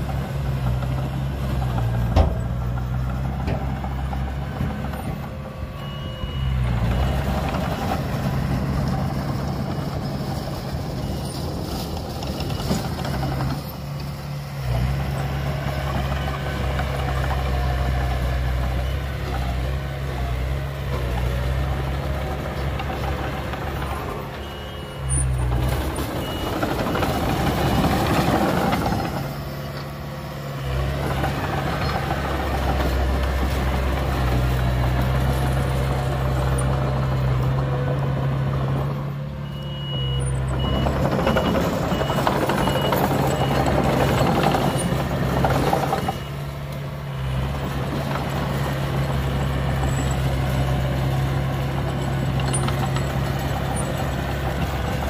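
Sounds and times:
bulldozer diesel engine running: 0.0 - 55.0
reversing alarm beeping: 5.6 - 8.0, 23.7 - 29.2, 39.4 - 46.6.

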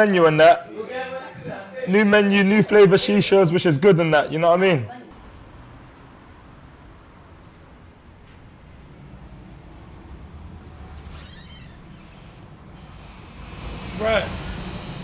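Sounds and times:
traffic rumble: 0.0 - 15.0.

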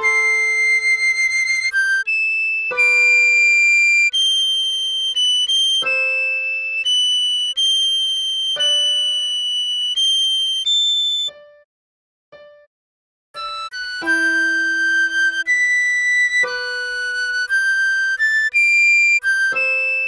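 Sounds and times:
recorder melody: 0.0 - 11.6, 13.4 - 20.0.

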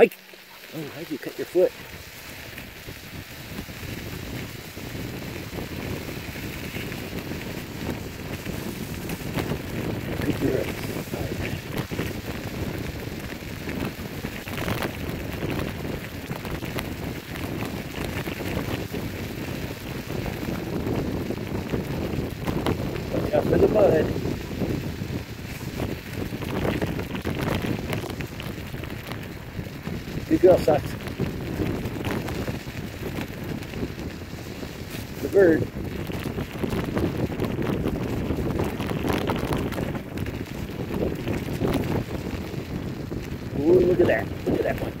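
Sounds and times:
scooter tyres rolling on gravel: 0.0 - 45.0
wind buffeting microphone: 0.0 - 45.0.

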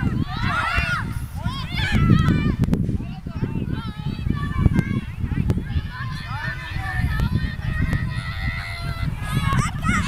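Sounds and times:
children shouting and calling: 0.0 - 10.0.

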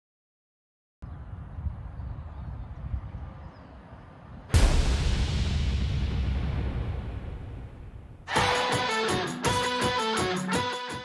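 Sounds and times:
low outdoor rumble: 1.1 - 8.3
loud cinematic boom: 4.5 - 8.4.

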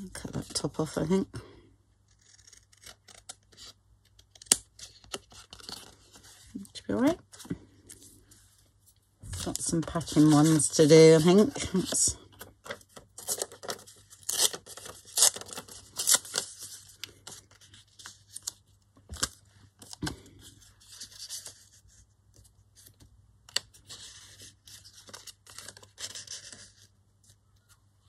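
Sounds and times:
paper tearing: 2.1 - 3.6.

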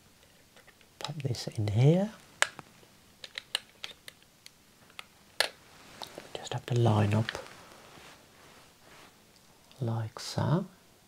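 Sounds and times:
small sharp clicks and taps: 2.4 - 5.6.

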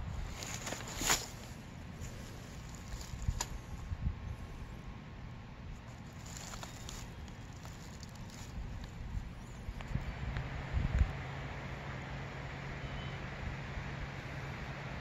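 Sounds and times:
wind rumble: 0.0 - 15.0.

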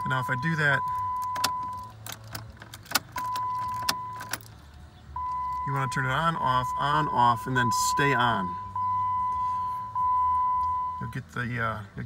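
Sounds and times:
ignition key clicking: 0.8 - 4.5.

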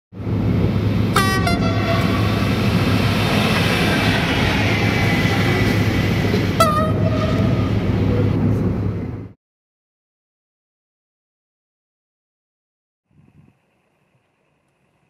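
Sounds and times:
train rumbling: 0.2 - 9.4
train horn blasts: 1.1 - 8.0.

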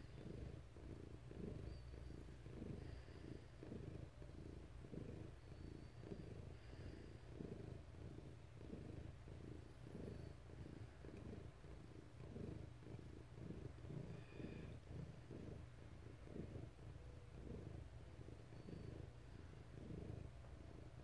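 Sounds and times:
cat purring: 0.0 - 21.0.

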